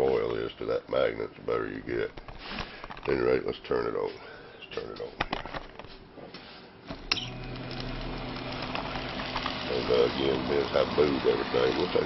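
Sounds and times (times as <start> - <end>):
electric motor humming: 6.9 - 12.0.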